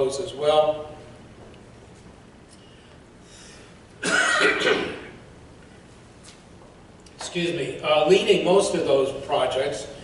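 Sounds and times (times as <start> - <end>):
man coughing: 4.0 - 5.2.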